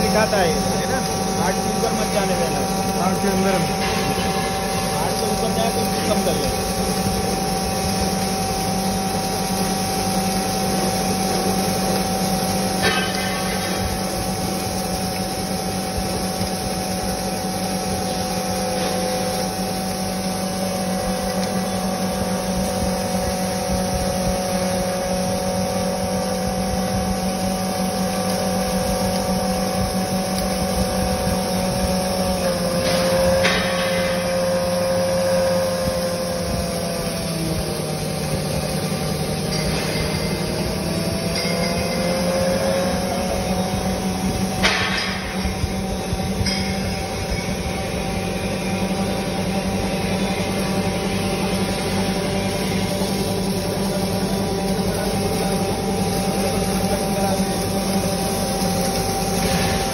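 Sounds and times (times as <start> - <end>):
electric flour mill grinding grain: 0.0 - 59.9.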